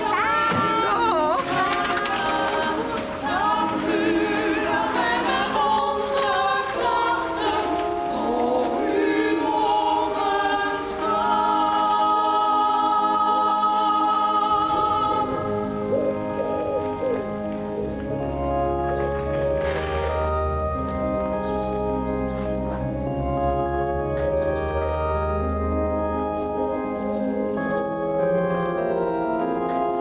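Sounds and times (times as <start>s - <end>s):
choir singing: 0.0s - 25.4s.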